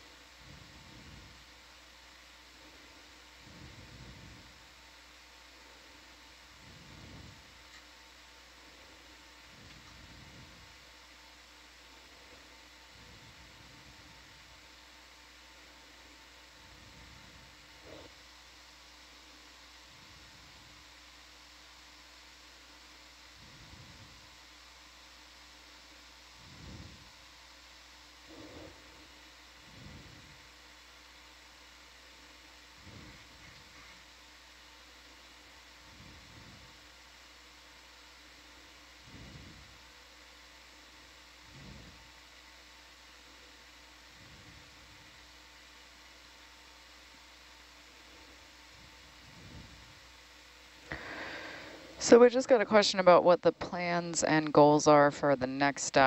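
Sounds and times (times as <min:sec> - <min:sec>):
microphone hiss and hum: 0:00.0 - 0:56.0.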